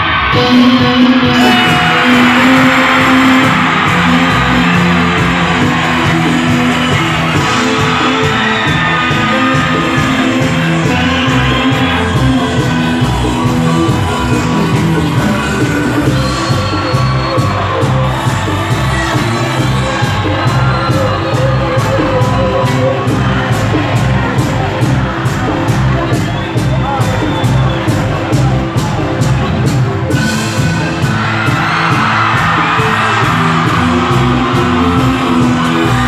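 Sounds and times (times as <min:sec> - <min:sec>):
live band dance music: 0:00.0 - 0:36.0.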